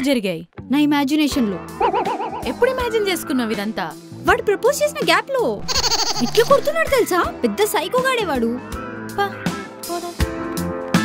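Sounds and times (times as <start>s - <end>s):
wordless bleat-like voice: 5.6s - 6.9s.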